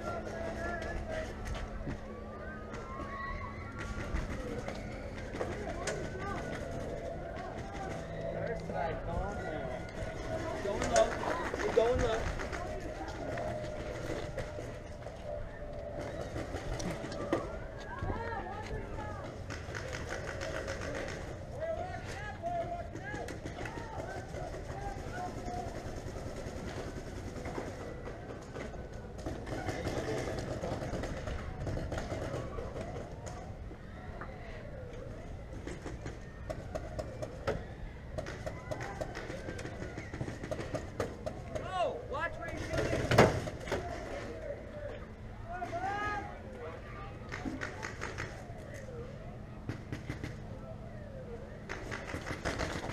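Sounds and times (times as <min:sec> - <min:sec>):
distant shouting voices: 0:00.0 - 0:52.9.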